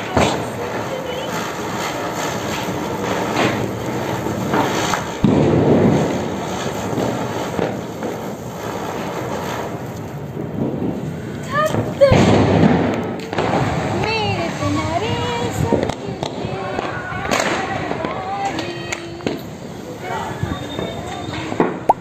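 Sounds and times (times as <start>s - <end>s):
firecracker bangs: 0.0s - 22.0s
spinner firework hissing: 0.0s - 22.0s.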